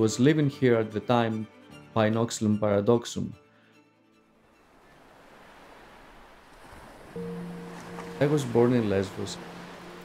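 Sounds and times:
sea surf: 4.6 - 10.0.

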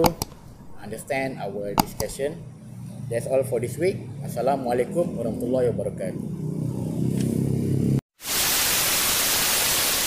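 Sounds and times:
tv static hiss: 8.2 - 10.0.

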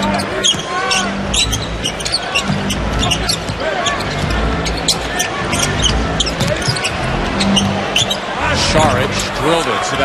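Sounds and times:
sneakers squeaking: 0.0 - 9.4
murmur of crowd: 0.0 - 10.0.

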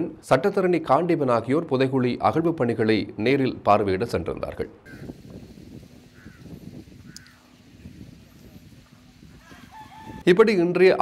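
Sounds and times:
distant bird calls: 4.9 - 5.2, 6.0 - 8.0.

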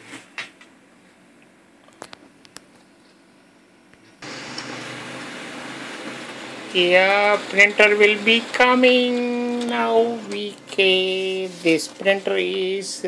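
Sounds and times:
printer motor and fan whirring: 4.2 - 13.0.

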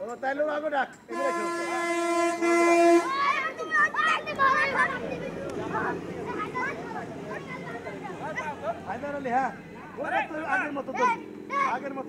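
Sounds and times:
vehicle horn: 1.1 - 3.7
children shouting: 1.3 - 11.9.

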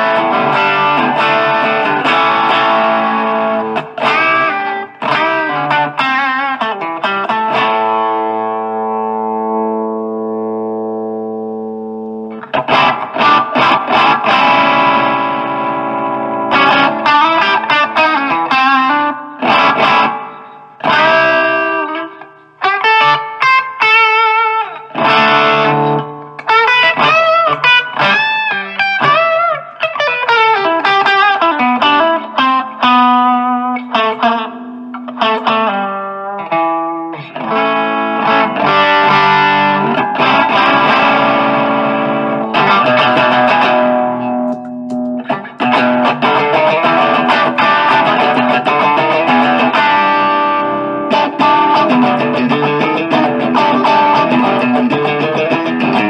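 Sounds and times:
distorted electric guitar: 0.0 - 56.0.

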